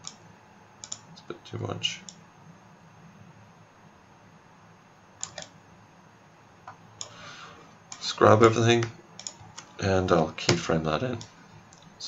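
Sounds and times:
computer mouse clicks: 0.0s - 0.2s, 0.8s - 1.0s, 5.2s - 5.6s, 8.8s - 9.7s
low hiss: 0.0s - 12.0s.

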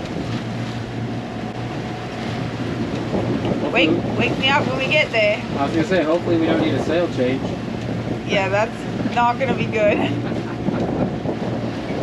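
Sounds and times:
sea water rushing around boat: 0.0s - 12.0s
wind rushing: 0.0s - 12.0s.

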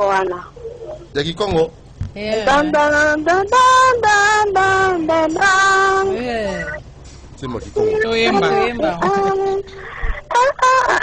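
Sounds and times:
woman singing unaccompanied: 2.1s - 6.9s, 7.6s - 11.0s.

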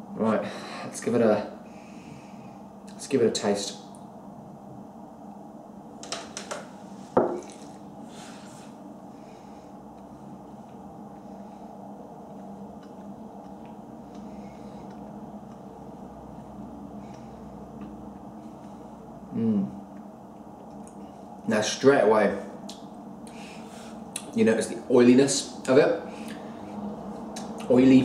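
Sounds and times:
low room hum: 0.0s - 28.0s
glass set down on wooden table: 7.2s - 7.5s.

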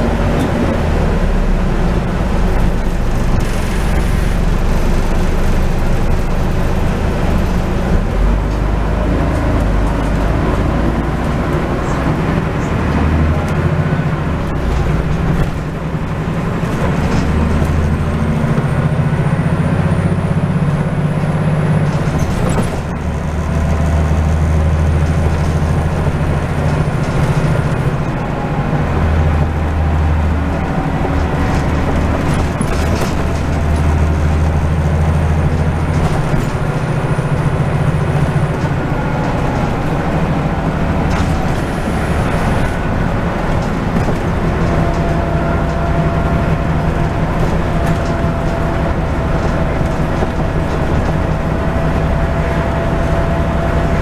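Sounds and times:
bus engine droning: 0.0s - 54.0s
road noise: 0.0s - 54.0s.

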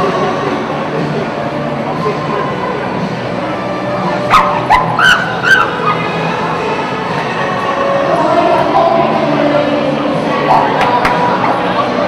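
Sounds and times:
crowd hubbub: 0.0s - 12.0s
dog barking: 4.3s - 6.0s.

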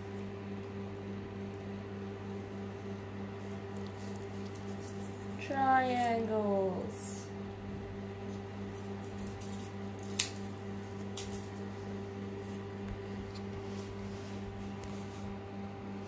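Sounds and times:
room heater humming: 0.0s - 16.0s.

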